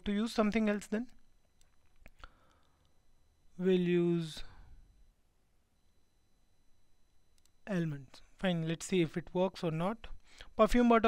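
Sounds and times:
thin steady high whine: 0.0s - 11.0s.

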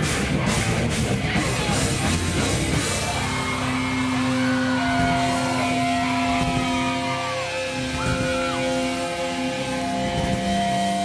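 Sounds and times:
busy low drumming: 0.0s - 11.0s
distorted electric guitars and bass: 0.0s - 11.0s.

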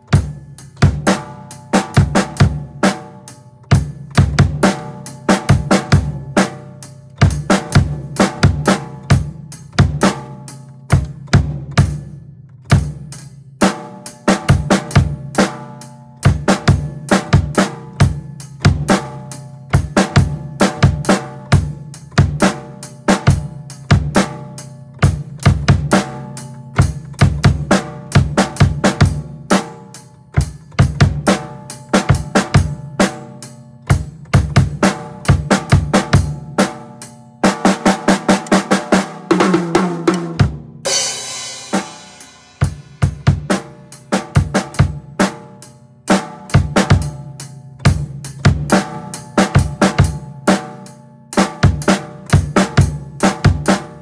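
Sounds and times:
drum kit groove: 0.0s - 54.0s.

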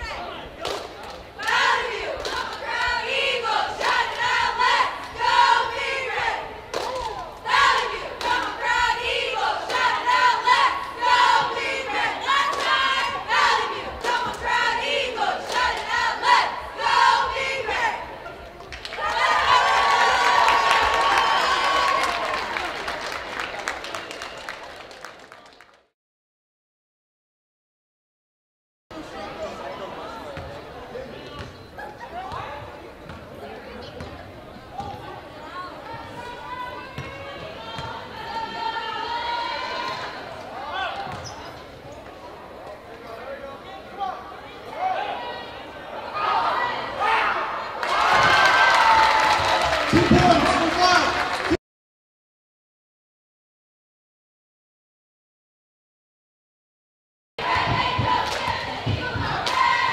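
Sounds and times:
voices in a gym: 0.0s - 20.3s, 28.9s - 51.6s
group chanting a cheer: 1.4s - 18.2s, 44.7s - 51.4s, 57.4s - 59.9s.

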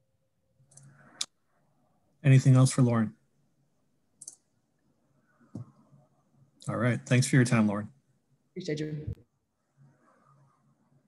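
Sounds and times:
faint clicks: 0.6s - 1.4s, 4.2s - 4.5s.

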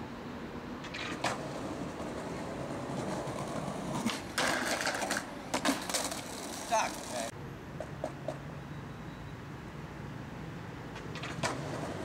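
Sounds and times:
skateboard wheels rolling on stone: 0.8s - 8.4s, 10.9s - 12.0s.

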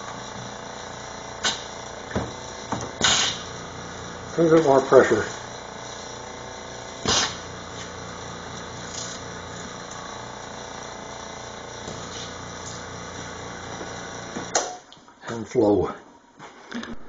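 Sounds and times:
small electric pump motor running: 0.0s - 14.7s.

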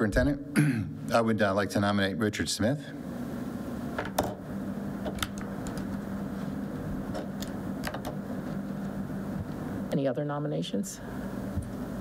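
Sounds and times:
ventilation hum: 0.0s - 12.0s.

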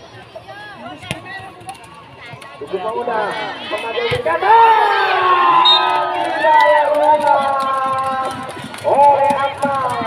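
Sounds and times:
crowd shouting and voices: 0.0s - 10.0s.

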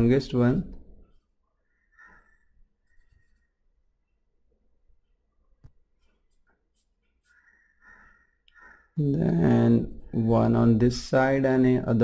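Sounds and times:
pencil scratching on paper: 6.0s - 8.8s.

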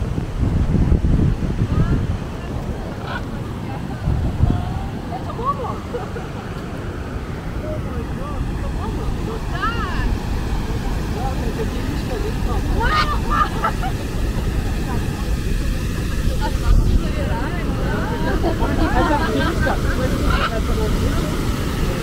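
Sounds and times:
wind buffeting microphone: 0.0s - 22.0s
people's voices: 1.6s - 22.0s.

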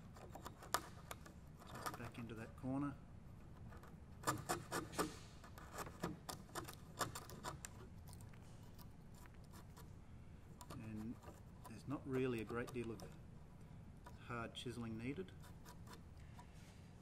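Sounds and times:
chisel scraping wood: 0.0s - 2.4s, 3.4s - 13.2s, 14.8s - 16.6s
chisel tapping and cracking wood: 3.8s - 8.3s.

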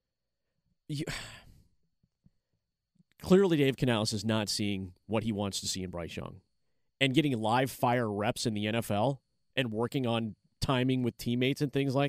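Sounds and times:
man speaking: 0.9s - 1.3s, 3.2s - 6.4s, 7.0s - 12.0s
man sighing: 0.9s - 1.7s.

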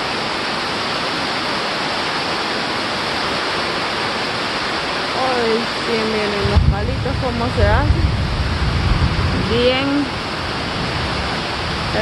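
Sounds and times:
heavy rain on foliage: 0.0s - 12.0s.

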